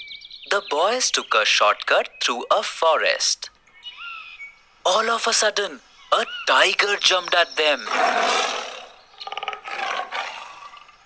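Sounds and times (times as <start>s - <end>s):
tiger growling: 7.8s - 11.0s
tiger roaring: 7.8s - 11.0s.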